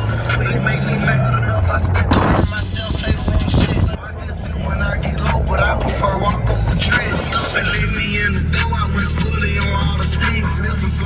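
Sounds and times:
music with vocals: 0.0 - 11.0
road noise: 0.0 - 11.0
vehicle engine running: 0.0 - 11.0.

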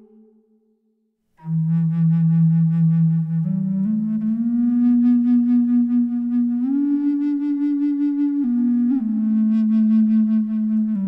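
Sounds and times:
low flute note: 0.0 - 0.8, 1.4 - 11.0.

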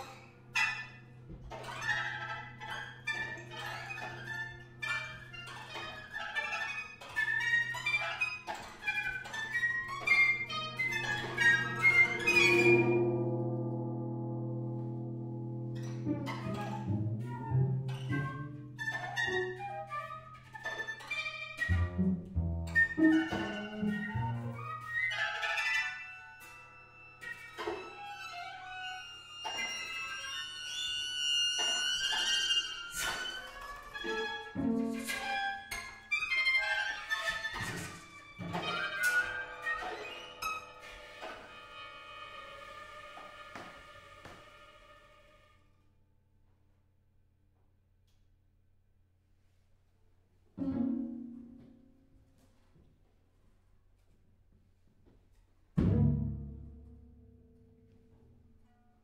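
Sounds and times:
held wind and bowed tones: 1.9 - 45.2
plucked and struck notes: 9.4 - 20.5, 21.1 - 25.2, 50.6 - 52.0, 55.8 - 58.4.

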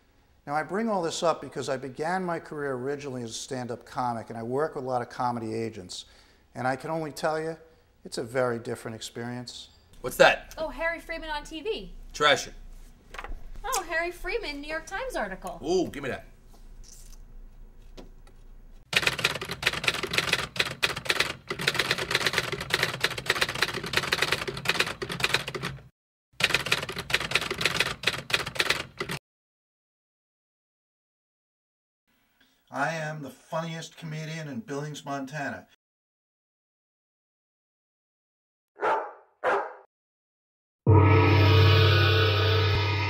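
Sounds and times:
typewriter keys clattering: 18.9 - 29.2
dog barking: 38.8 - 39.9.

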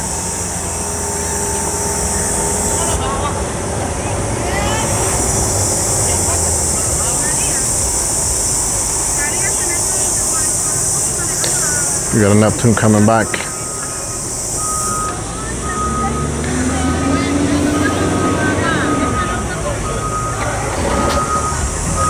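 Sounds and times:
boat motors idling: 0.0 - 22.0
faint distant voices: 0.0 - 22.0
high-pitched hiss: 4.6 - 17.1.

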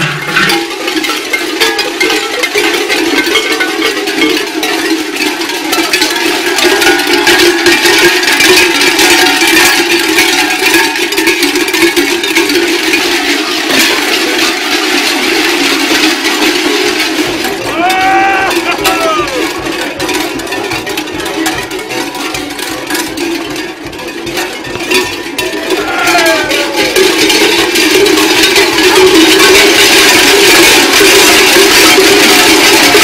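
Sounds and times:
large metal bells clanging: 0.0 - 33.0.

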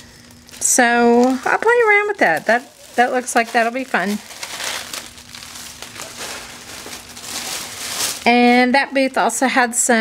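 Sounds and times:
crepe paper rustling: 0.0 - 8.8.

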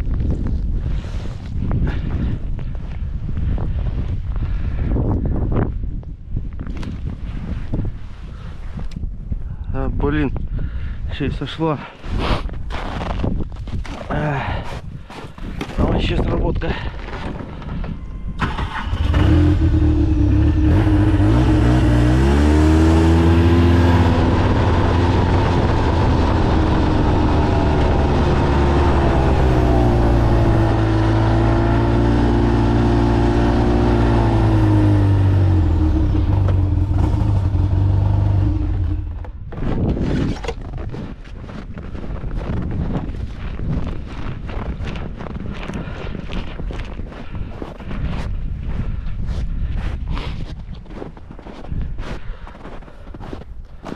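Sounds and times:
wind gusts on microphone: 0.0 - 53.9
snowmobile engine revving: 18.4 - 39.2.

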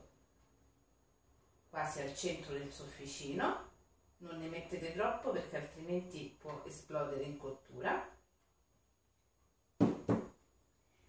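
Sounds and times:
ceramic plate knocking on table: 9.8 - 10.4.

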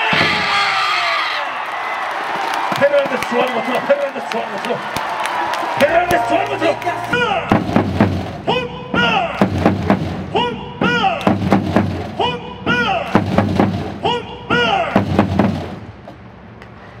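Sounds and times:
hard drum hits: 7.1 - 15.9.

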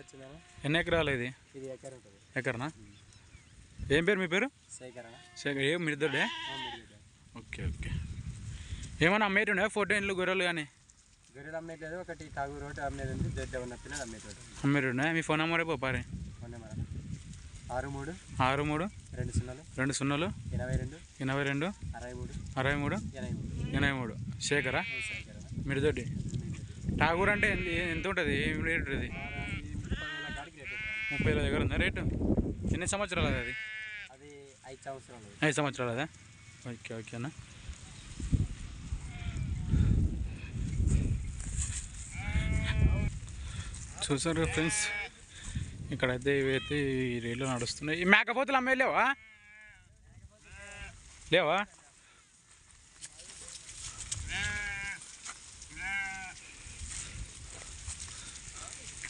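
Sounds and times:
sheep bleating: 4.9 - 7.0, 24.5 - 25.3, 27.0 - 31.5, 33.2 - 34.2, 39.0 - 41.1, 42.1 - 43.2, 44.3 - 45.2, 49.0 - 51.0, 54.2 - 55.0, 55.7 - 56.6.

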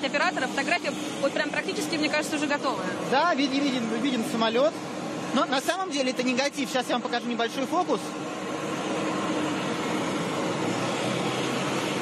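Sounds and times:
jet aircraft rushing noise: 0.0 - 12.0.

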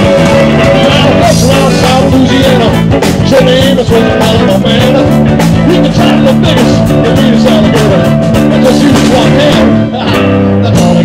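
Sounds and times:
bass guitar: 0.0 - 11.0
drums: 0.0 - 11.0
electric guitars: 0.0 - 11.0.

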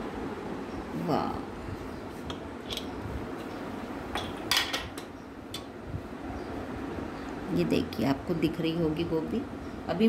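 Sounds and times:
steady low background noise: 0.0 - 10.0.

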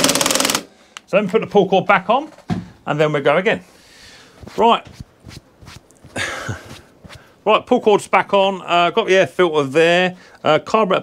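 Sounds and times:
short scraping rustle: 3.6 - 7.4.

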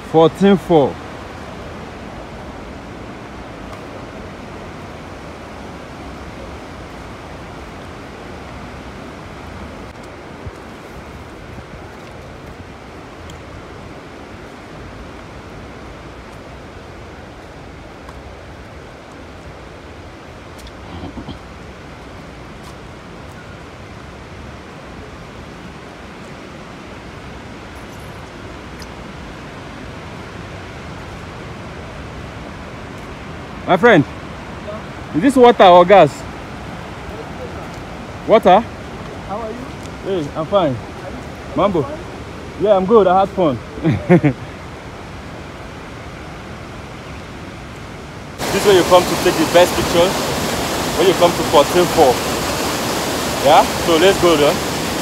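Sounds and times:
waterfall rushing: 0.0 - 55.0.

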